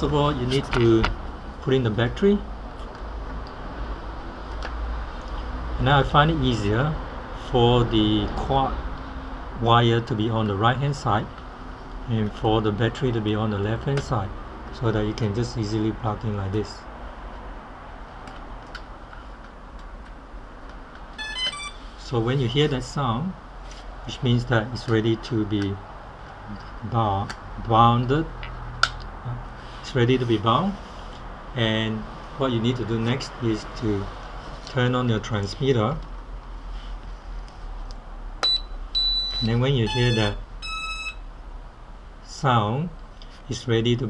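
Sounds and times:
high beeps: 0:21.2 - 0:21.9, 0:38.4 - 0:41.3.

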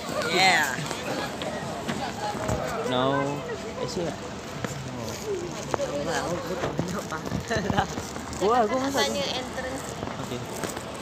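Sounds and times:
people talking outdoors: 0:00.0 - 0:11.0.

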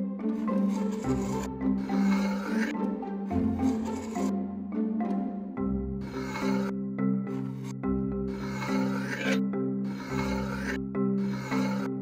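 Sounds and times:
background music: 0:00.0 - 0:12.0
knife scraping kinetic sand: 0:00.4 - 0:02.8, 0:03.5 - 0:04.3, 0:06.0 - 0:06.7, 0:07.3 - 0:12.0.

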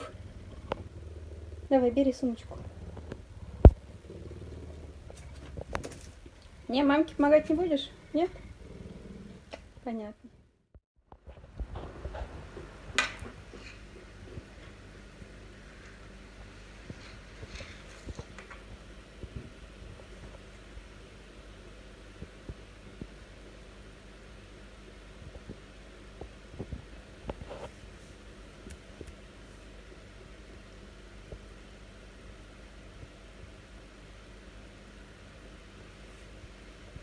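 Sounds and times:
puma purring: 0:00.0 - 0:10.4
faint low hum: 0:00.0 - 0:37.0.

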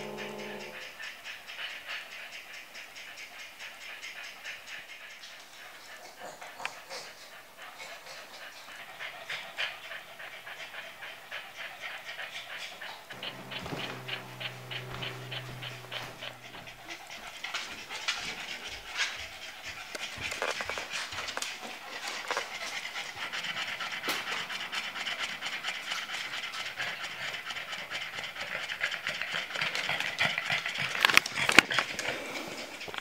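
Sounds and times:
dog panting: 0:00.0 - 0:33.0.

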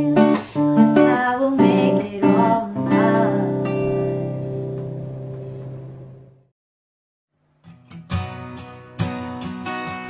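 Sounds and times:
acoustic guitar chord ringing: 0:00.0 - 0:06.4.

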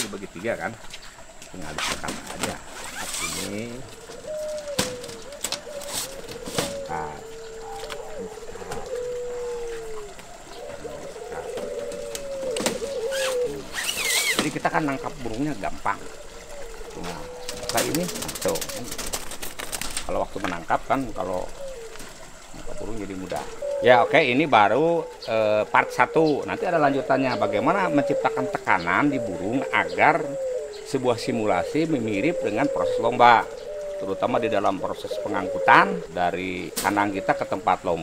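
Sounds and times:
dove cooing: 0:00.0 - 0:38.0.

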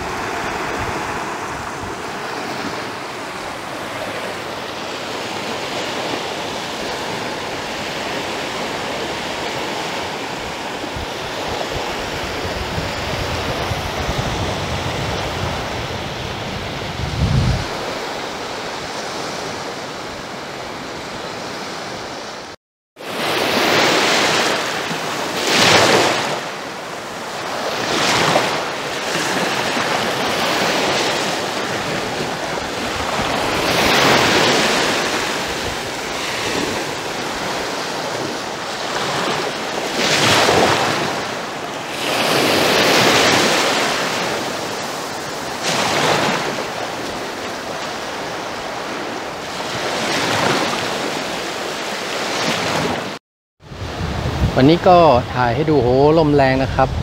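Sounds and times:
wind rumbling on microphone: 0:00.0 - 0:22.4, 0:24.3 - 0:51.5, 0:52.4 - 0:57.0
waves washing onto shore: 0:00.0 - 0:57.0.

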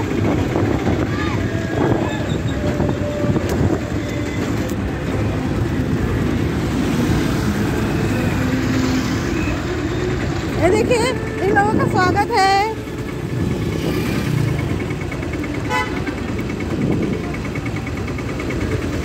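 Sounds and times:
motorcycle engine running: 0:00.0 - 0:19.0
road and wind noise: 0:00.0 - 0:19.0.

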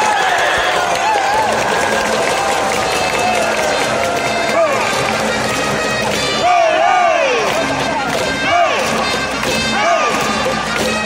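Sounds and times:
cheer song over loudspeakers: 0:00.0 - 0:11.0.

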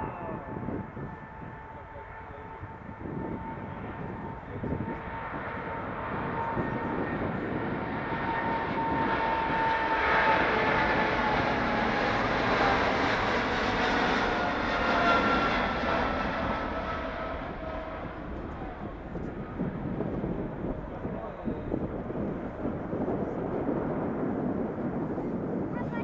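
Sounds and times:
jet engines roaring at takeoff: 0:00.0 - 0:26.0.

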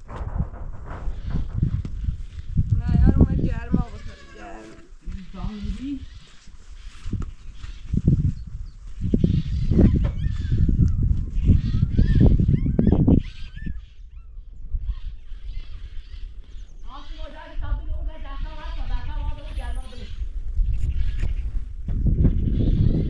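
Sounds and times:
low rumbling: 0:00.0 - 0:06.4
goat bleating: 0:03.7 - 0:06.2.

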